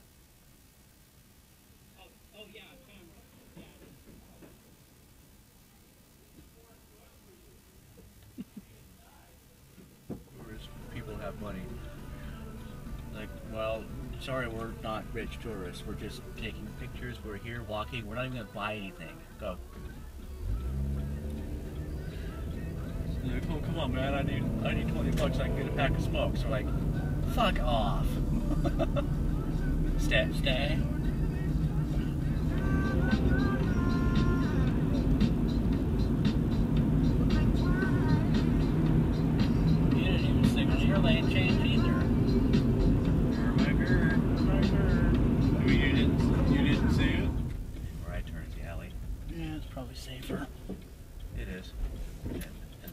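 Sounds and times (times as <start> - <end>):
radio music: 9.2 - 50.6
car engine pulling away: 19.7 - 52.9.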